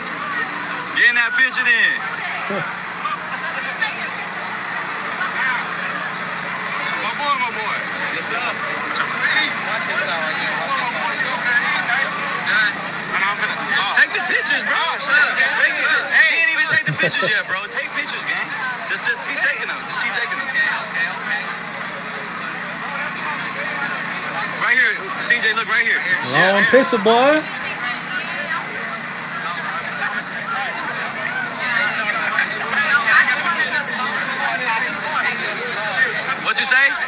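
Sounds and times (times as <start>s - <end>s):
crowd chatter: 0.0s - 37.0s.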